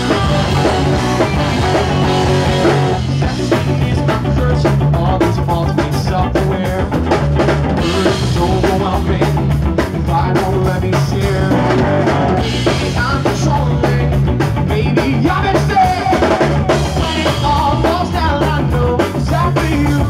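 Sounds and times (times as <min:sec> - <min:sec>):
drum kit beat: 0:00.0 - 0:20.0
electric guitars: 0:00.0 - 0:20.0
keyboards: 0:00.0 - 0:20.0.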